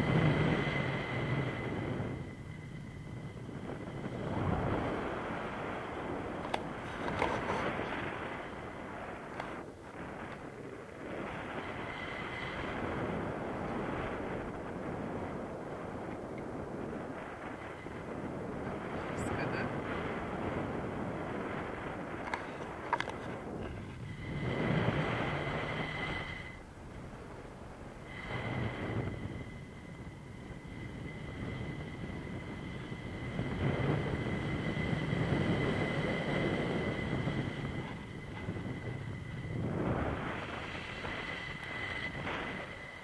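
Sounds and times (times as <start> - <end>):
wind rushing over microphone: 0.0 - 43.0.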